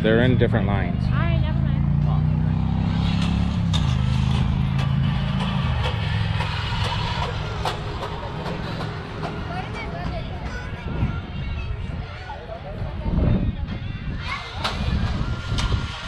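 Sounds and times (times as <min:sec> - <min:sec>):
crowd chatter: 0:00.0 - 0:16.0
low engine-like hum: 0:00.0 - 0:16.0.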